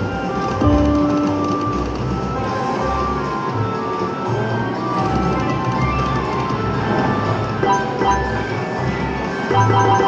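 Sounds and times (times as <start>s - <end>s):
hum and jingles of machines: 0.0s - 10.0s
slot machine electronic music: 5.0s - 10.0s
held beeping tones: 7.6s - 8.5s, 9.5s - 10.0s.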